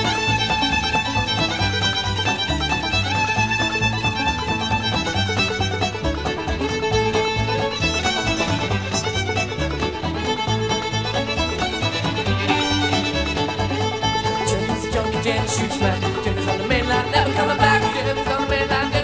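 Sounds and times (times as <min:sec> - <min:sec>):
fiddle playing lead: 0:00.0 - 0:19.0.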